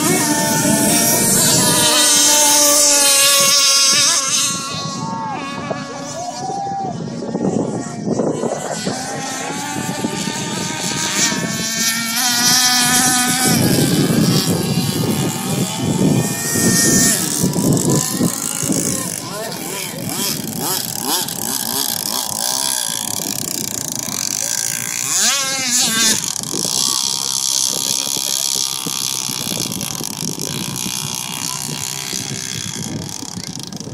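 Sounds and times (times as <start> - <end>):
rc boat engines whining: 0.0 - 33.9.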